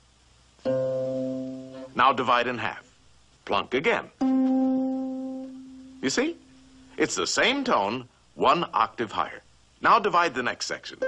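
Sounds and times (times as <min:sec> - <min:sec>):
plucked string note: 0:00.6 - 0:01.9, 0:04.2 - 0:06.9.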